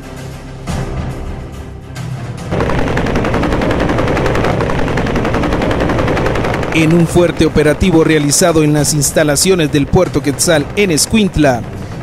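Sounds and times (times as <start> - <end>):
music: 0.0 - 4.3, 6.7 - 12.0
helicopter rotor chopping: 2.5 - 12.0.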